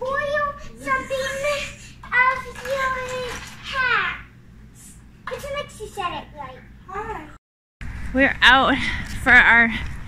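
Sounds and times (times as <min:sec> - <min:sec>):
young child talking: 0:00.0 - 0:04.3, 0:05.3 - 0:07.4.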